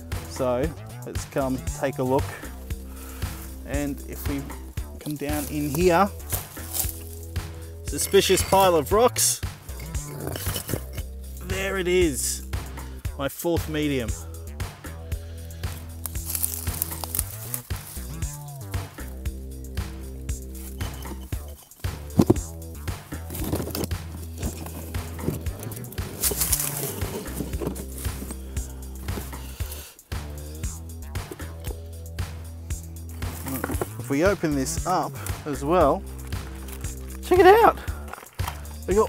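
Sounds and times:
background music with bass line: 0.0s - 39.0s.

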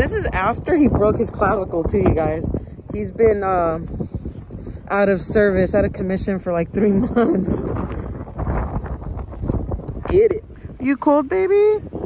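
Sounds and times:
wind blowing on microphone: 0.0s - 12.0s.

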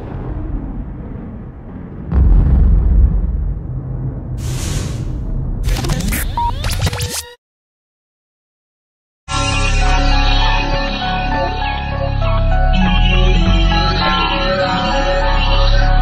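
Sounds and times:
deep boom: 0.0s - 5.9s
low rumble: 0.0s - 6.2s
whoosh: 0.0s - 6.2s.

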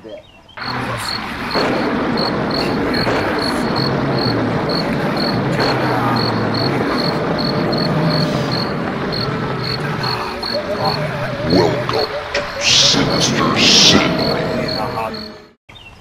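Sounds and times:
ambient bed with low held tones: 0.6s - 15.6s
cricket chirps: 0.6s - 15.6s.

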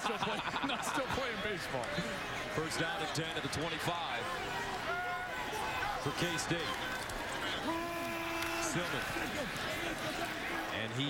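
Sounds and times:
stadium crowd noise: 0.0s - 11.0s
people shouting: 7.5s - 10.6s.

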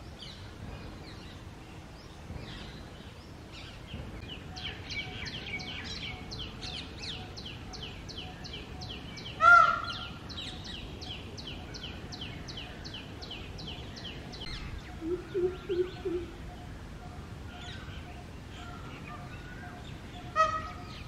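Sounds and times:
peacock call: 14.9s - 16.7s, 18.6s - 21.0s.

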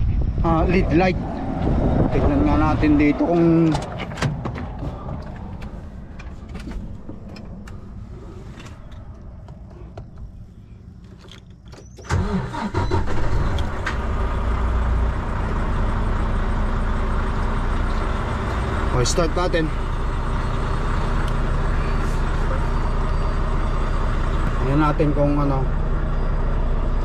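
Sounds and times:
diesel engine starting and idling: 0.4s - 27.0s
knocks and clicks in truck cab: 3.6s - 7.8s.

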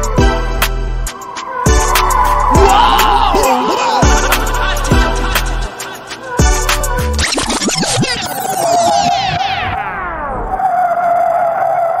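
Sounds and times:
falling pitch sweeps: 1.1s - 5.8s.

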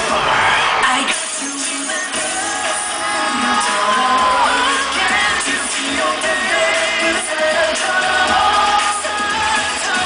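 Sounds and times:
crowd screaming: 0.0s - 10.0s
live pop dance music: 0.0s - 10.0s.

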